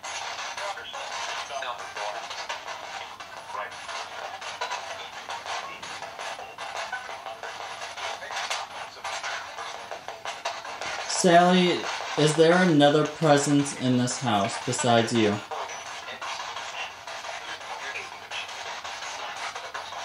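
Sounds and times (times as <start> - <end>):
choppy radio static: 0.0 - 20.0
snatches of broadcast music: 0.0 - 20.0
snatches of broadcast voices: 0.0 - 20.0.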